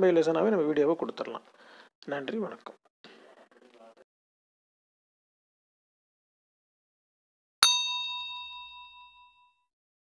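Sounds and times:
bright bell ding: 7.6s - 9.7s.

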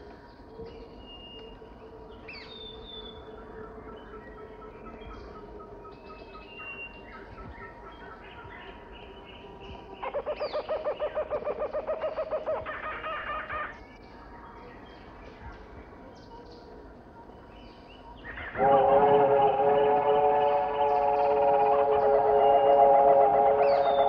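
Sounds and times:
fast-pulsing bird call: 18.3s - 24.0s.

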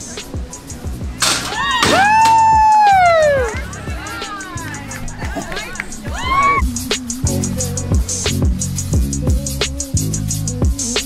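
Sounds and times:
crowd cheering: 0.0s - 7.2s
background music with steady beat: 0.0s - 11.0s.

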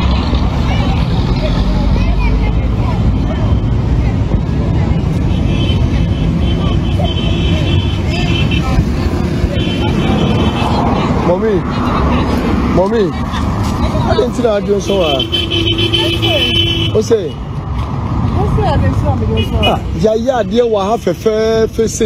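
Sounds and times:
low rumble of street noise: 0.0s - 22.0s
passing road traffic: 0.0s - 22.0s
people talking: 0.3s - 5.2s, 6.0s - 17.4s, 18.3s - 22.0s.

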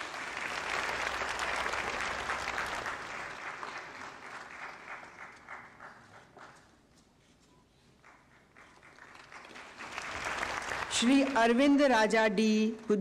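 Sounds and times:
audience applauding: 0.0s - 6.7s, 8.0s - 11.7s.

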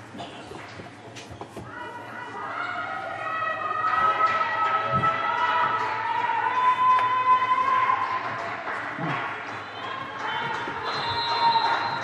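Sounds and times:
players calling out in hall: 1.8s - 12.0s.

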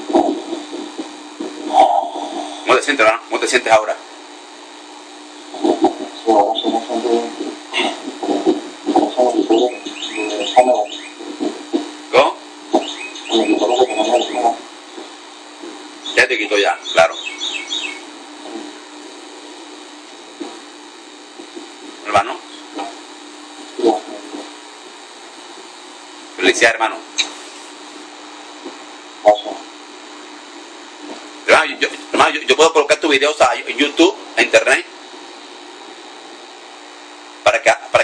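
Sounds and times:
background hiss: 0.0s - 38.0s
steady low hum: 0.0s - 38.0s
small bird chirping: 9.6s - 11.2s, 12.7s - 14.4s, 16.8s - 18.1s.

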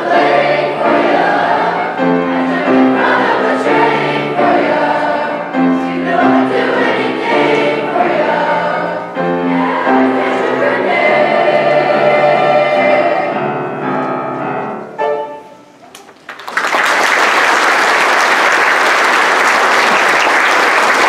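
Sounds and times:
children's choir singing: 0.0s - 15.4s.

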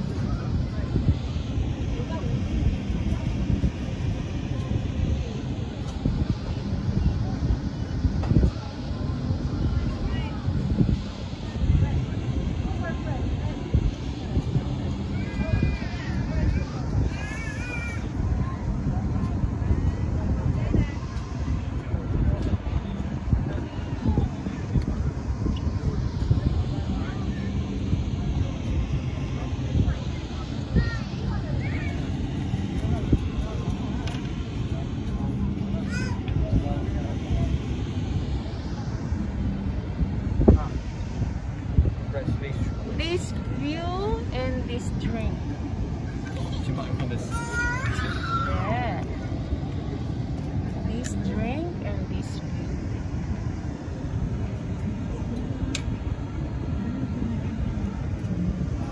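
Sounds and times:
faint voices: 0.0s - 58.9s
wind buffeting microphone: 0.0s - 58.9s
low rumble: 17.9s - 58.9s.

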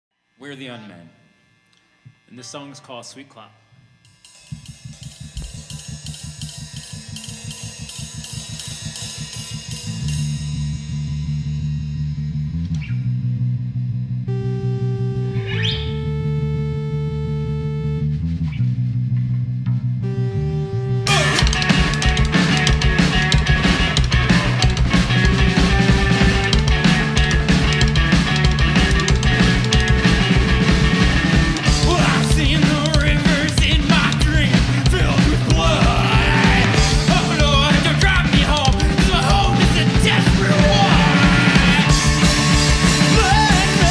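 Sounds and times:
bass-heavy rhythmic pattern: 3.9s - 43.9s
full rock band with drums: 4.3s - 11.6s, 21.1s - 43.9s.

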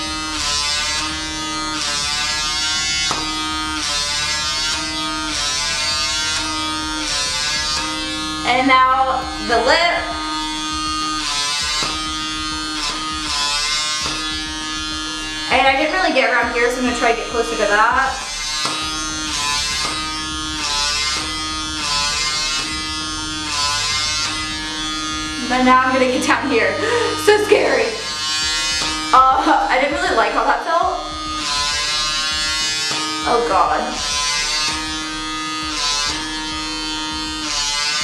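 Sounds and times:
microdermabrasion device humming: 0.0s - 38.0s
small suction motor buzzing: 0.0s - 38.0s.

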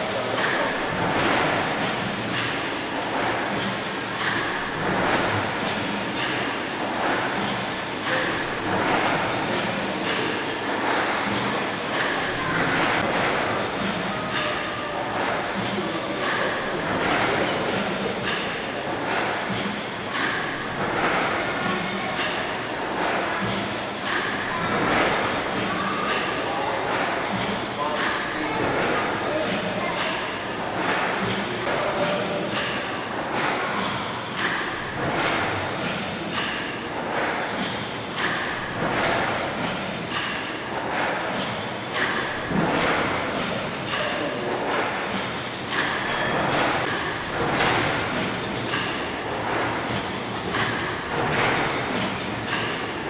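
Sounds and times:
steam engine rhythmic hissing: 0.0s - 53.0s.

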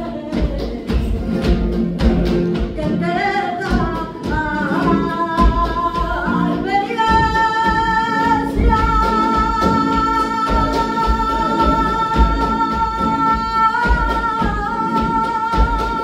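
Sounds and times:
flamenco guitar: 0.0s - 16.0s
rhythmic handclaps: 0.0s - 16.0s
woman singing: 0.0s - 16.0s.

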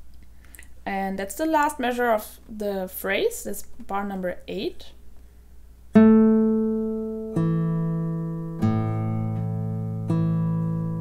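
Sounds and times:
classical guitar notes plucked: 5.9s - 11.0s.

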